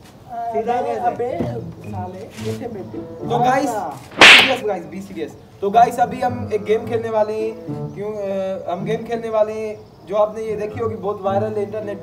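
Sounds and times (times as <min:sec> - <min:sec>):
swish-like crack: 0:04.2 - 0:04.6.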